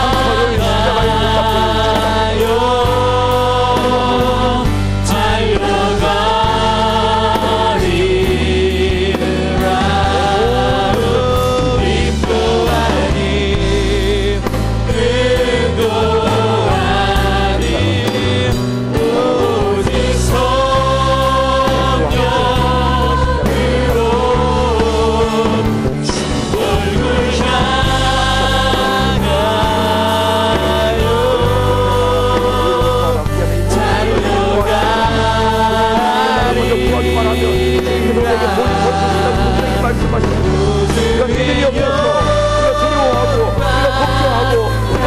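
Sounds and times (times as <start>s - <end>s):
steady bass: 0.0s - 45.0s
sustained chords: 0.0s - 45.0s
voices singing held notes: 0.0s - 45.0s.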